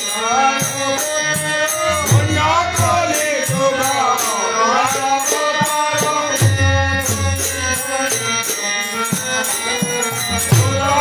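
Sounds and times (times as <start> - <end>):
harmonium chords: 0.0 - 11.0.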